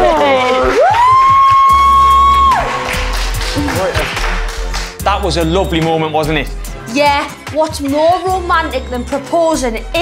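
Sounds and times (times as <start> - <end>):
hands clapping: 0.0 - 5.2
background music: 0.0 - 10.0
woman whooping: 0.1 - 2.8.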